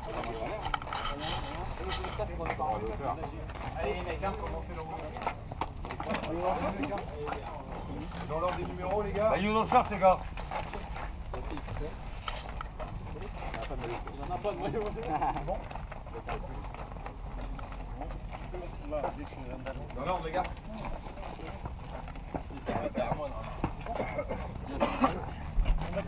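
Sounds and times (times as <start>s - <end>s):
men chatting and calling out: 0.0s - 26.0s
football boots clicking on concrete: 2.2s - 26.0s.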